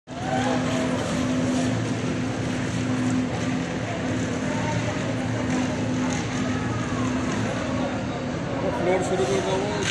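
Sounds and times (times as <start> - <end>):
machine engine humming: 0.1 - 9.9
workers' voices: 0.1 - 9.9.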